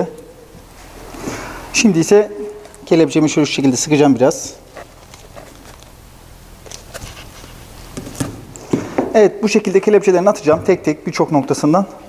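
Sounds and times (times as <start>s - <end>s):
handling noises: 2.4s - 9.1s.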